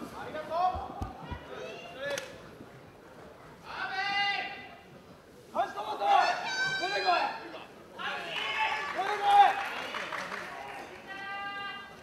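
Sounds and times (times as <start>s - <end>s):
faint crowd noise: 0.0s - 12.0s.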